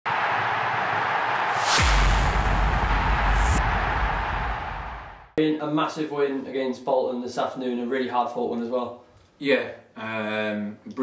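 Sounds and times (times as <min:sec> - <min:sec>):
whoosh: 0:01.4 - 0:05.4
deep bass boom: 0:01.5 - 0:05.4.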